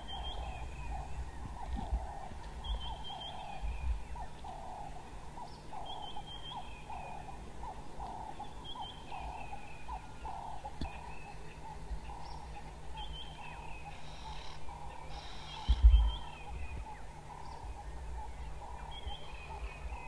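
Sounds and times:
low pulsed animal call: 0:00.0 - 0:20.0
low rumble: 0:06.6 - 0:20.0.

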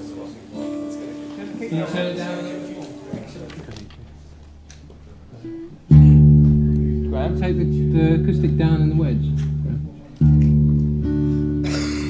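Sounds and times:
acoustic guitar note: 0:05.2 - 0:12.0
acoustic guitar chord ringing: 0:05.5 - 0:12.0.

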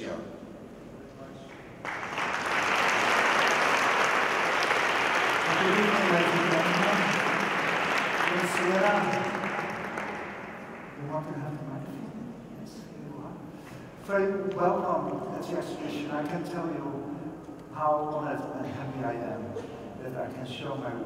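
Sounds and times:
audience applauding: 0:01.8 - 0:11.0.

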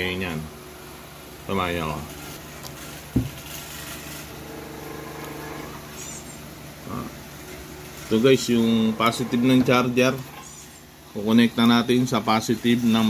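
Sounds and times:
low steady hum: 0:00.0 - 0:13.0.

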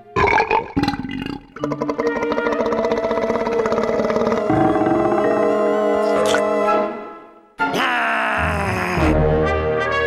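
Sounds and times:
voice-like comic sound effect: 0:07.6 - 0:09.2.

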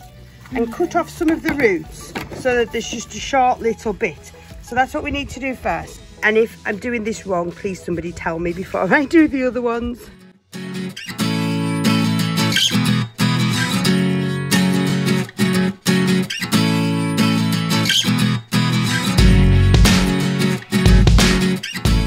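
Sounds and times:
guitar music: 0:00.0 - 0:22.0
deep bass: 0:19.2 - 0:20.2.

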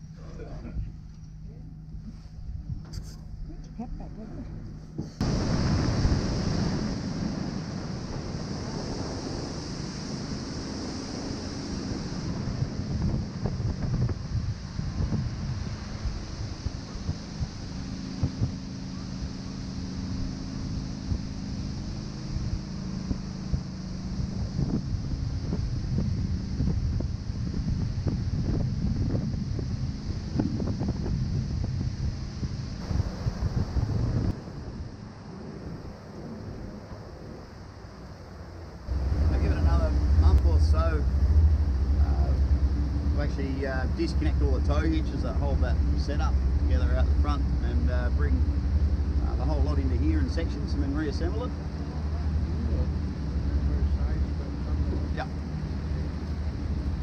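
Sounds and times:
boat engine drone: 0:00.0 - 0:57.0
wind buffeting microphone: 0:04.4 - 0:57.0
water rushing along hull: 0:04.9 - 0:57.0.

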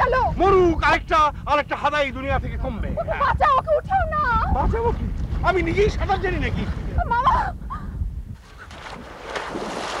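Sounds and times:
water splashing from wading: 0:08.4 - 0:10.0.

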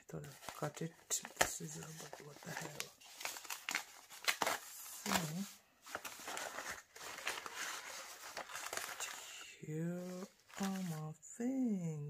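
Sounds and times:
paper mailer crinkling: 0:00.2 - 0:11.1.

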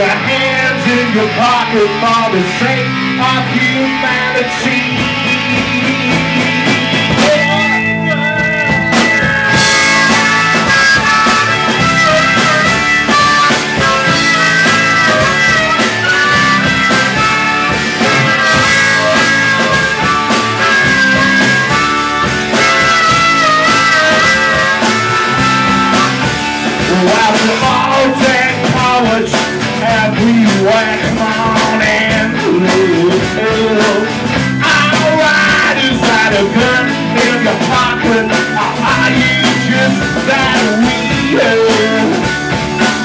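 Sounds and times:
harmonica wailing: 0:00.0 - 0:29.8, 0:30.4 - 0:43.0
rock band playing: 0:00.0 - 0:43.0.

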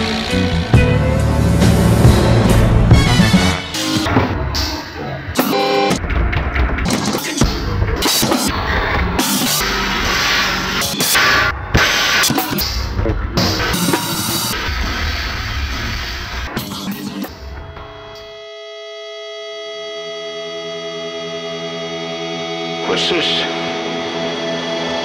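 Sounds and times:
heavy metal band playing: 0:00.0 - 0:18.1, 0:20.8 - 0:25.0
sustained held chord: 0:17.9 - 0:25.0.

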